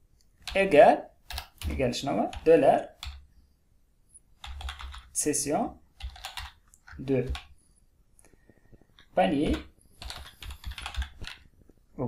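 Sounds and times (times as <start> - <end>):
typing on keyboard: 1.2 - 3.2, 4.4 - 5.2, 5.9 - 7.5, 8.8 - 11.5.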